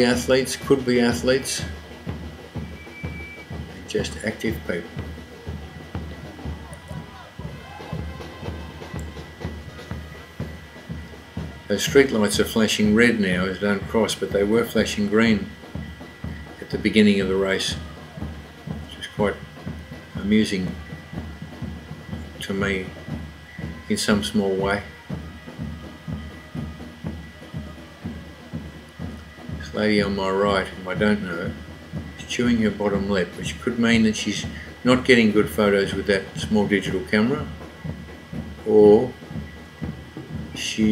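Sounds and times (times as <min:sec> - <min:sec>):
live band music: 0:00.0 - 0:19.2
crowd voices: 0:00.0 - 0:40.9
live band playing: 0:00.0 - 0:40.9
steady drum beat: 0:00.0 - 0:40.9.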